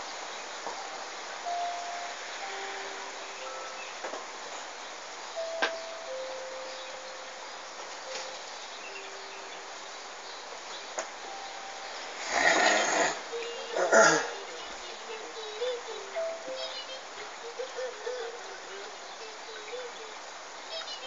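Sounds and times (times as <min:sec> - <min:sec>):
rain falling on street: 0:00.0 - 0:21.0.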